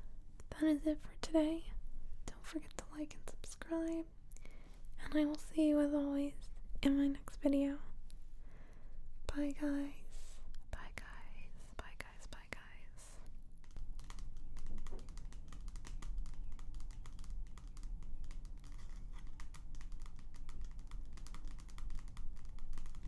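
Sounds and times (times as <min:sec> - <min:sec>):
fingernails tapping on magazine: 0:13.6 - 0:23.0.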